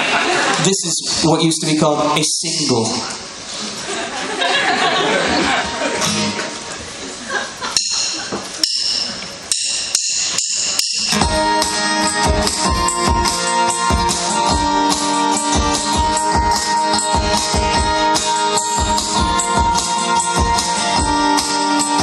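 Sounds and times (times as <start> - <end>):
crowd noise: 0.0 - 22.0
live band playing: 0.0 - 22.0
strummed acoustic guitars: 5.2 - 6.9, 9.3 - 22.0
steady beat: 7.8 - 22.0
keyboard: 10.2 - 22.0.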